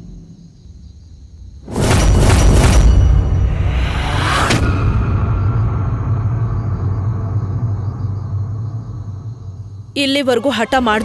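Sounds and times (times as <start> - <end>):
low rumbling drone: 2.6 - 10.0.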